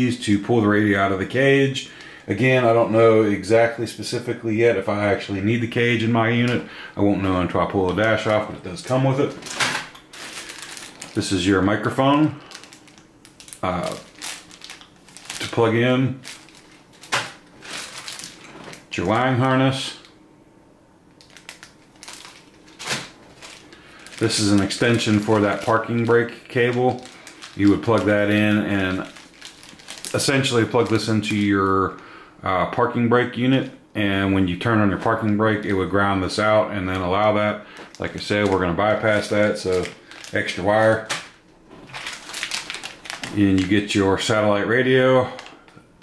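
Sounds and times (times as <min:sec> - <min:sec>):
plastic bag crinkling: 0:07.2 - 0:20.1, 0:21.1 - 0:32.0, 0:36.9 - 0:45.9.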